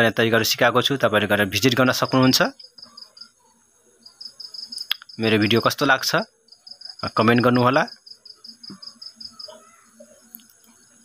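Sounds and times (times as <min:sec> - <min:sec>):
man speaking: 0:00.0 - 0:02.6, 0:05.2 - 0:06.3, 0:07.0 - 0:08.0
high insect-like chirping: 0:00.0 - 0:11.0.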